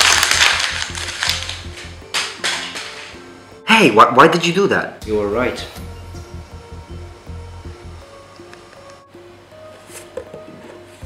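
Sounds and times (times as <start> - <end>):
paper crumpling: 0.0 - 2.0
soft background music: 0.0 - 11.0.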